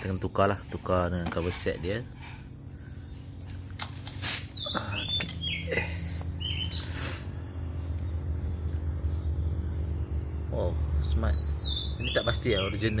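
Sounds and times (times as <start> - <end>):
low hum: 0.0 - 12.0
small birds chirping: 0.0 - 13.0.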